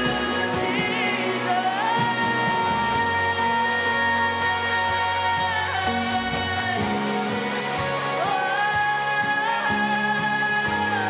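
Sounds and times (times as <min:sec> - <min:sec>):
electric guitar and band: 0:00.0 - 0:11.0.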